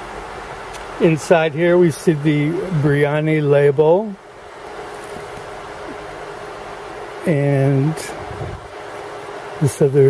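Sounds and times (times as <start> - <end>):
faint steady hum: 0.0 - 10.0
steady hiss: 0.0 - 10.0.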